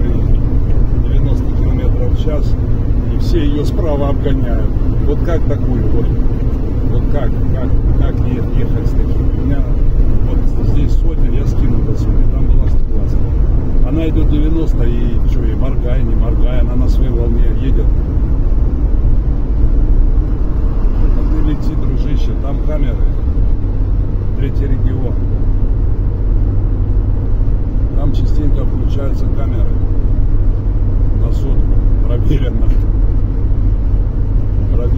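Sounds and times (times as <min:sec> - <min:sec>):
car road and engine rumble: 0:00.0 - 0:34.9.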